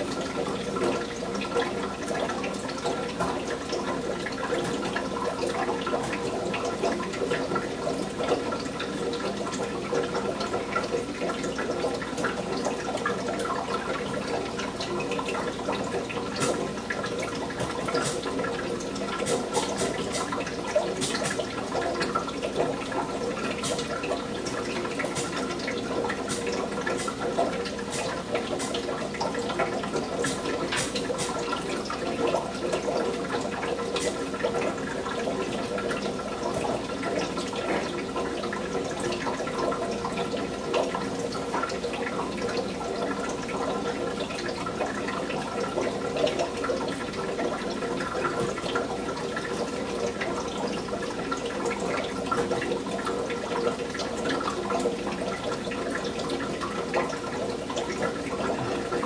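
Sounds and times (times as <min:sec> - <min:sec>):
running bubbling water: 0:00.0 - 0:59.0
small clicks and splashes: 0:00.0 - 0:59.0.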